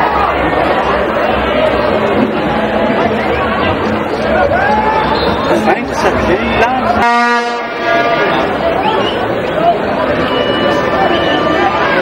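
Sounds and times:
crowd chatter: 0.0s - 12.0s
low horn blast: 6.2s - 8.6s.

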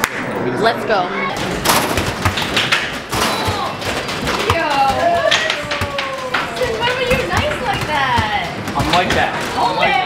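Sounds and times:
basketballs thudding on backboard: 1.4s - 9.6s.

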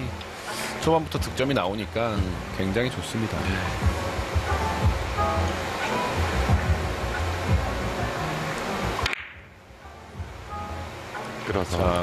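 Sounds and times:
music bed: 0.0s - 9.0s, 9.7s - 12.0s.

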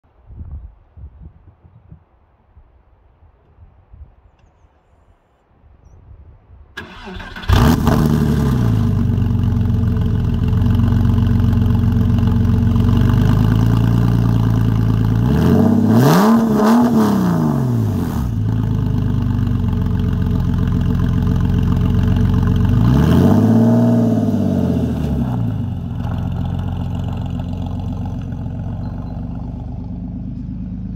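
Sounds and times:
loud car engine idling and revving: 7.4s - 30.9s.

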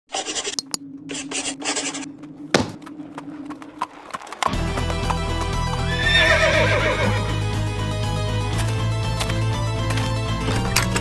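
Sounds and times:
background music: 4.4s - 11.0s
horse whinnying: 5.8s - 7.3s.

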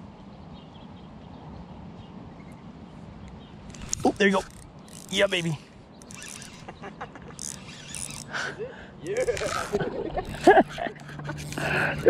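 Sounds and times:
fishing reel clicking: 3.7s - 8.4s, 9.0s - 12.0s
reel scraping: 3.7s - 8.4s, 9.0s - 12.0s.

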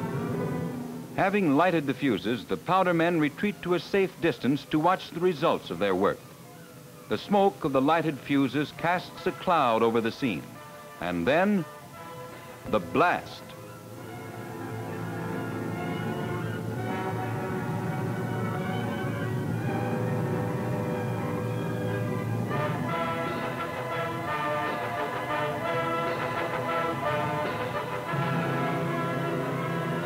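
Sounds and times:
orchestral film music: 7.5s - 30.0s.

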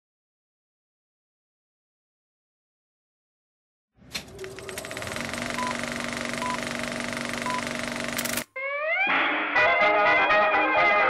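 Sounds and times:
film projector clatter: 4.3s - 8.5s.

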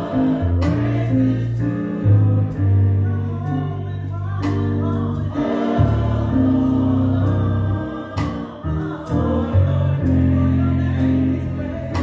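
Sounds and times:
choir singing gospel song: 0.0s - 12.0s.

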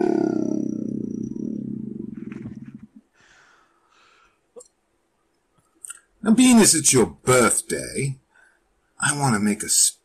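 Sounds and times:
man growling deeply: 0.0s - 2.2s.

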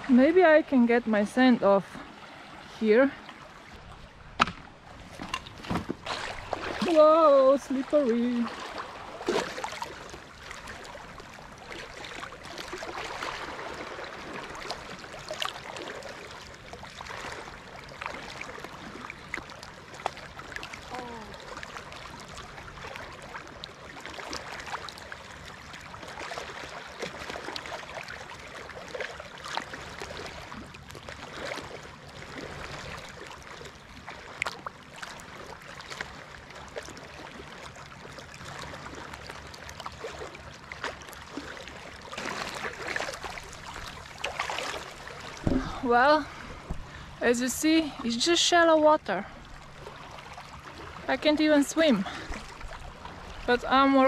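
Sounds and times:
feet wading through water: 0.0s - 54.0s
small waves lapping: 0.0s - 54.0s.

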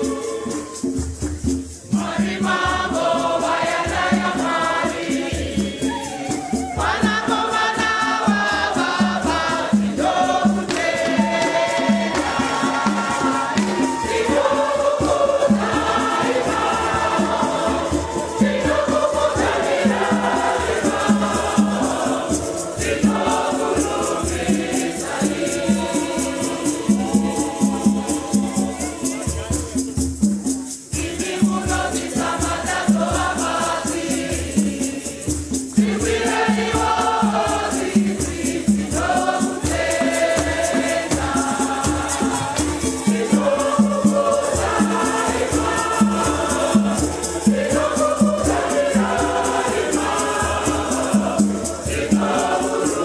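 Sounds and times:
choir and congregation singing: 0.0s - 53.0s
rattles shaken: 0.0s - 53.0s.

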